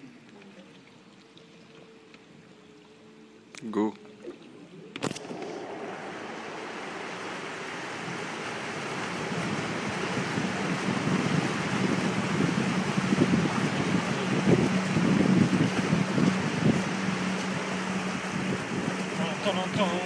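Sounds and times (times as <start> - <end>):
water rushing past boat hull: 0.0 - 20.0
wind buffeting microphone: 4.9 - 20.0.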